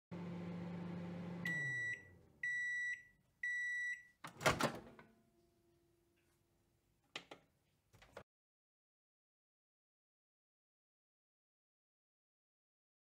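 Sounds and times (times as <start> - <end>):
microwave oven humming: 0.1 - 3.6
microwave beeps: 0.5 - 4.2.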